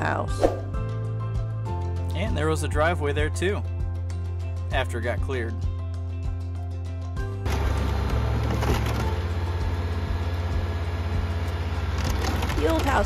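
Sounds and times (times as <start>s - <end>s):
background music: 0.0s - 13.0s
diesel engine running: 7.4s - 13.0s.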